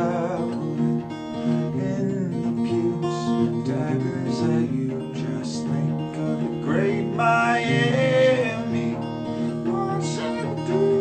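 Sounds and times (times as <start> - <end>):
acoustic guitar strumming chords: 0.0 - 11.0.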